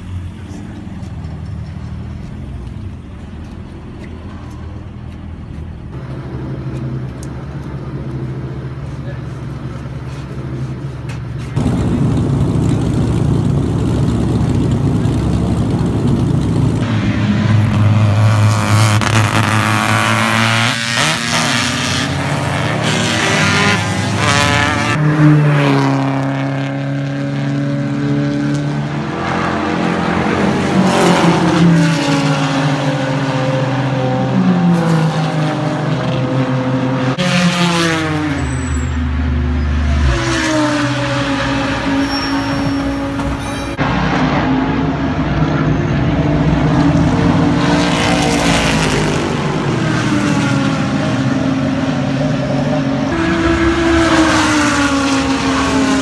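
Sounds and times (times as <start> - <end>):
engine hum: 0.0 - 56.0
race cars accelerating: 6.0 - 56.0.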